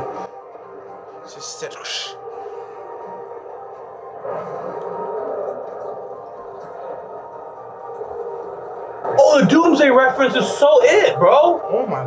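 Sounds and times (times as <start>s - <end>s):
muffled background music: 0.0s - 12.0s.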